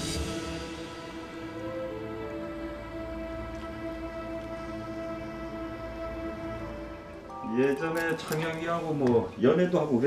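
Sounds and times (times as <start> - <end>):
music of long held chords: 0.0 - 8.5.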